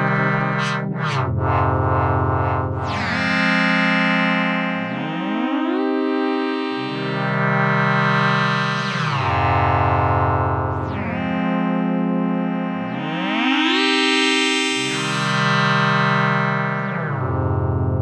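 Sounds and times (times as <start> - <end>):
synthesizer sustained chords: 0.0 - 18.0.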